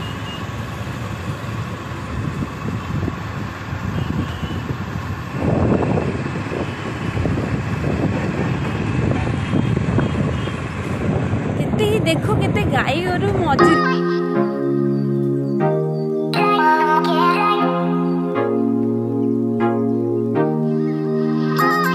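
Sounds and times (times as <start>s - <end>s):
motorbike road noise: 0.0s - 13.7s
wind rushing over microphone: 1.0s - 13.6s.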